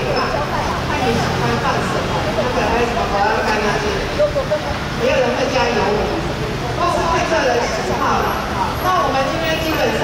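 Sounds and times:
people talking indistinctly: 0.0 - 10.0
street traffic rumble: 0.0 - 10.0.

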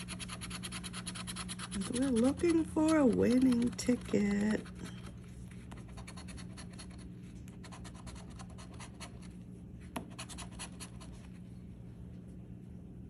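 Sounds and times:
coin scraping scratch-off ticket: 0.0 - 5.1.

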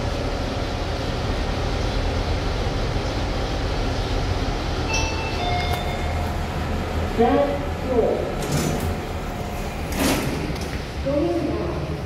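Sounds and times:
lift hum and rushing air: 0.0 - 11.1
two-note electronic chime: 4.9 - 6.4.

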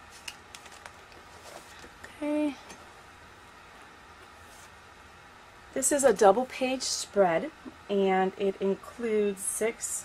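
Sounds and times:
plastic page sheet rustling: 0.0 - 2.0.

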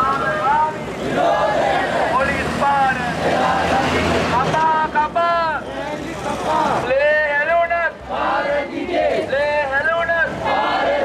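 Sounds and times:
protesters shouting slogans: 0.0 - 11.0
road traffic hum: 0.0 - 11.0.

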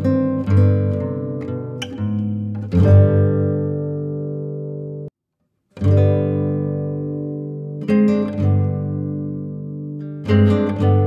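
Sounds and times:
acoustic guitar chords: 0.0 - 5.1, 5.7 - 11.0.

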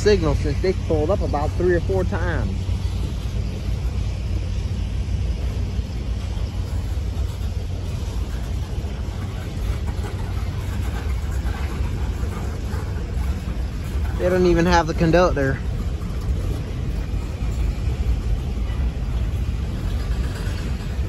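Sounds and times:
freight train rumbling past: 0.0 - 21.0
train wheel clicks: 0.0 - 21.0.

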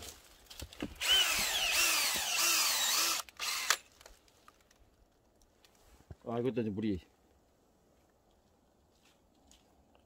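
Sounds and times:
cordless drill whining: 1.0 - 3.9.

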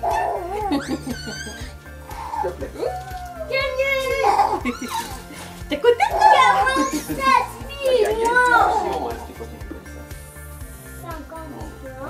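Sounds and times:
baby vocalizing: 0.0 - 9.3
quiet background music: 0.0 - 12.0.

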